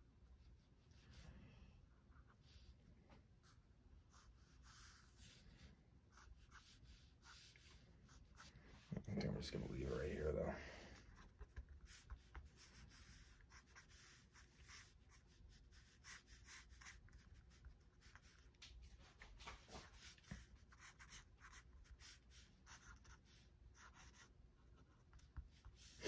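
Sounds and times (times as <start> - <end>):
pen nib scratching on paper: 11.0 - 18.7, 19.8 - 26.0.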